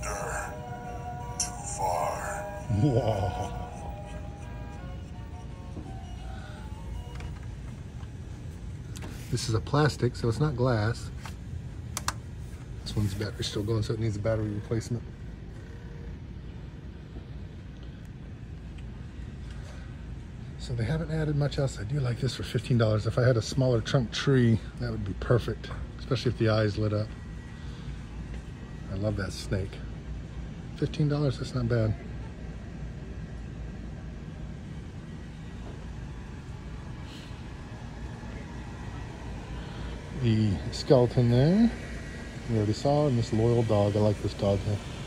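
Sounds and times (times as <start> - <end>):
low store background rumble: 0.0 - 45.0.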